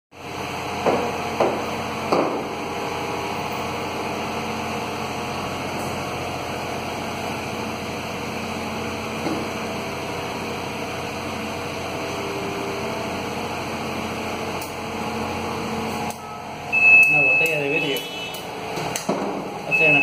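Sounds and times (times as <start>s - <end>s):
machine hum: 0.2s - 20.0s.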